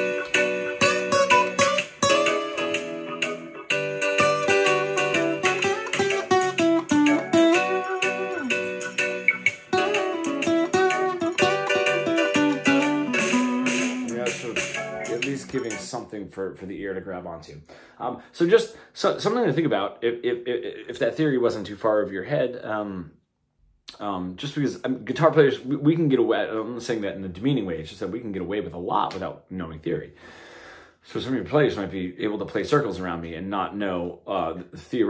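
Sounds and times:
acoustic guitar melody: 0.0 - 16.0.

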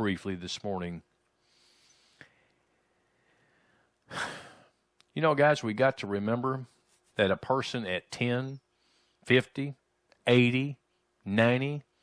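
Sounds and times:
man breathing: 1.4 - 4.8, 8.7 - 9.2.

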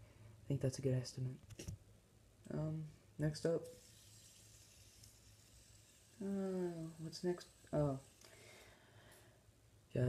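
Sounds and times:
faint steady hiss: 0.0 - 10.0
low hum: 2.5 - 9.9.

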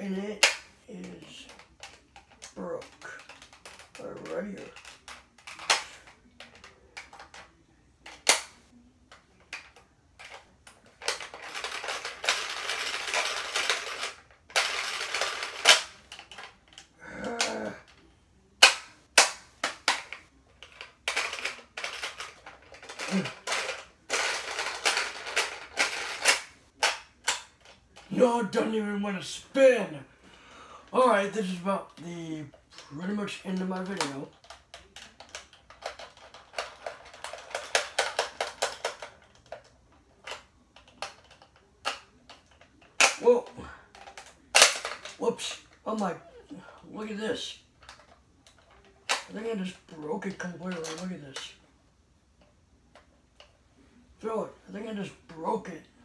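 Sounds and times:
plastic toy clicking and rattling: 0.4 - 28.2, 31.4 - 46.4, 47.7 - 51.6.

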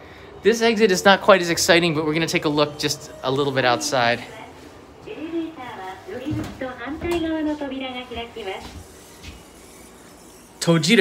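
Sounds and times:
recorded woman's voice announcement: 4.0 - 8.8.

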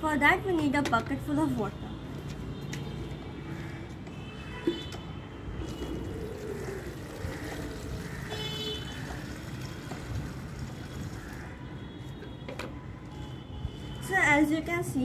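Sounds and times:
tap water pouring into bucket: 5.6 - 11.7.

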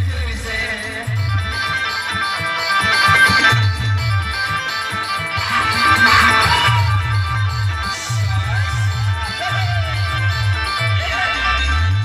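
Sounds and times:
drum and bass beat: 0.0 - 12.0
plucked guitar lead melody: 0.1 - 12.0.

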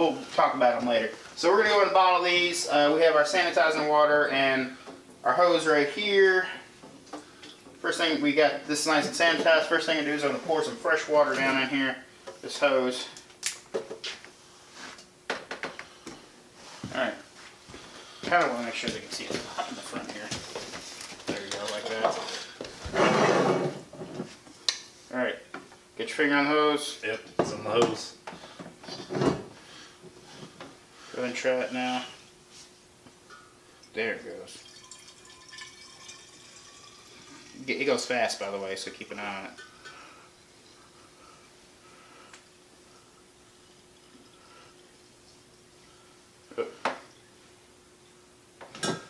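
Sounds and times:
liquid filling a bottle: 34.5 - 37.8.

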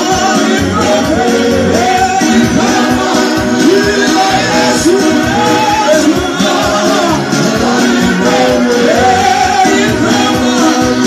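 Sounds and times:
keyboard music with beat: 0.0 - 11.0
people singing through microphones: 0.0 - 11.0.

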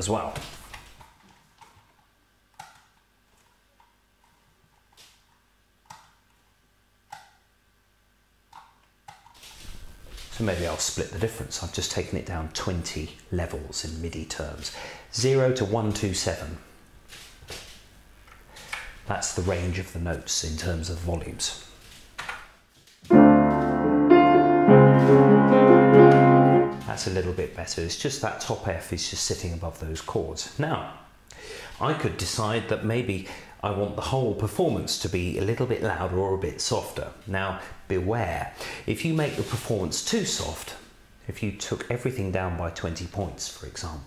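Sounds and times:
high piano note: 23.1 - 27.0
upright piano chords: 23.1 - 27.0.

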